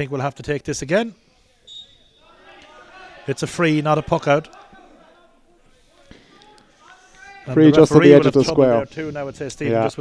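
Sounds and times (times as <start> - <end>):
referee's whistle blast: 1.7 - 2.4.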